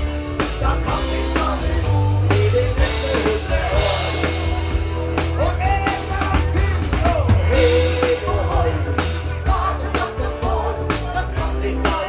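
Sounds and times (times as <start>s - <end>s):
bass guitar: 0.0s - 12.0s
drum kit: 0.0s - 12.0s
electric and acoustic guitars: 0.0s - 12.0s
person singing: 0.4s - 12.0s.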